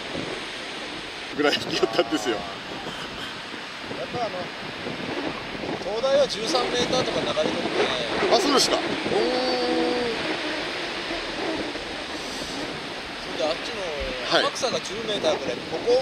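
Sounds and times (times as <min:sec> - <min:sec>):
surf breaking: 0:00.0 - 0:16.0
wind noise on microphone: 0:00.0 - 0:16.0
wind rushing: 0:00.0 - 0:16.0.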